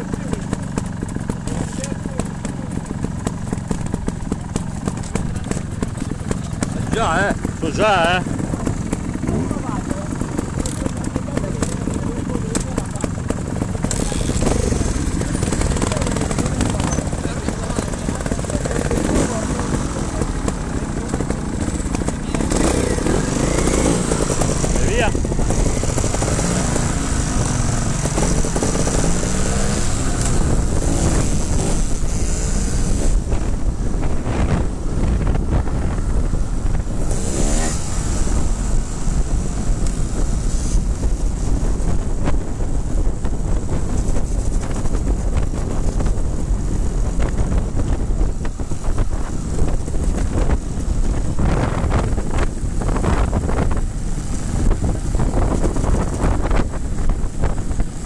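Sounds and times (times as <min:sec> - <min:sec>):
motorcycle engines revving: 0:00.0 - 0:58.0
motorcycle riding on road: 0:00.0 - 0:58.0
wind on microphone: 0:05.2 - 0:58.0.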